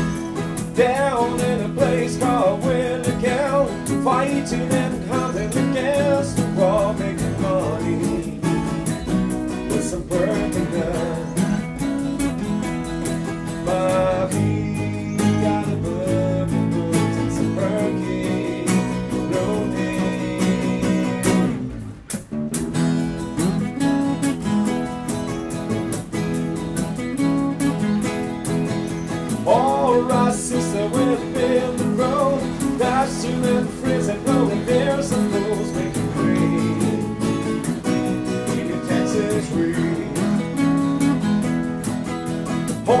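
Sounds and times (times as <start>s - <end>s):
acoustic guitars playing blues: 0.0s - 43.0s.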